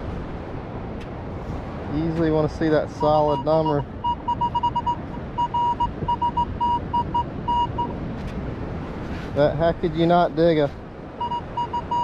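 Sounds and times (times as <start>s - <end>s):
metal detector beeping: 3.0s - 8.0s, 11.2s - 12.0s.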